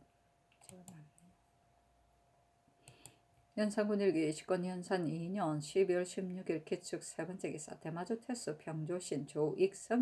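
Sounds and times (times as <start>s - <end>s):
faint sharp clicks: 2.8s - 3.2s.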